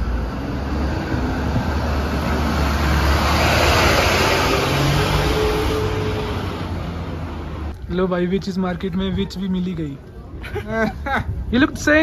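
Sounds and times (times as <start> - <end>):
van engine rumbling: 0.0 - 8.1.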